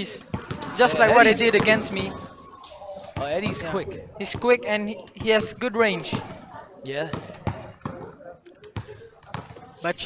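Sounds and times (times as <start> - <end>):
basketball bouncing on court: 0.3 - 2.2, 3.2 - 4.5, 5.2 - 6.4, 7.1 - 9.7.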